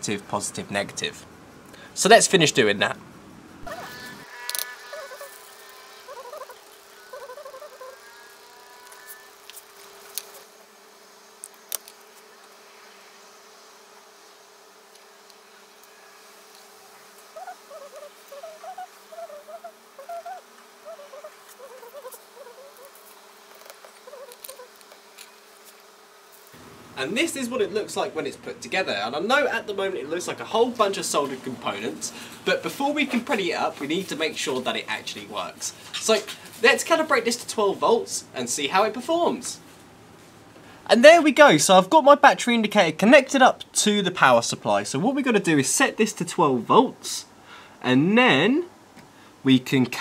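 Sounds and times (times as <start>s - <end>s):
faint steady whine: 0.0s - 50.0s.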